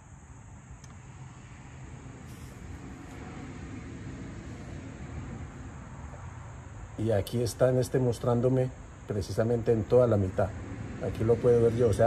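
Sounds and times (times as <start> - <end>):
low room noise rumble: 0.0 - 12.0
faint click: 0.8 - 1.0.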